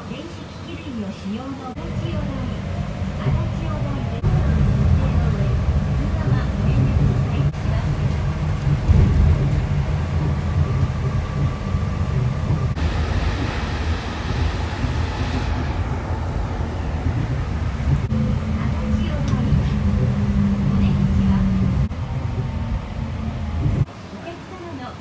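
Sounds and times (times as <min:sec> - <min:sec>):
train running low rumble: 0:00.0 - 0:25.0.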